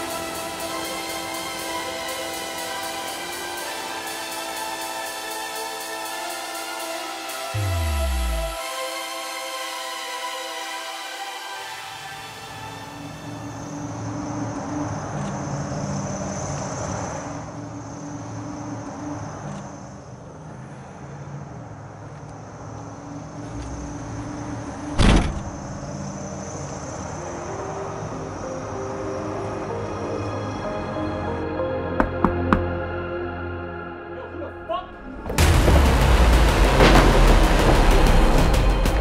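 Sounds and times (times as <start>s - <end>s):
synthesizer music with held notes: 0.0s - 15.6s, 26.9s - 39.0s
car hatch slamming shut: 24.9s - 25.5s.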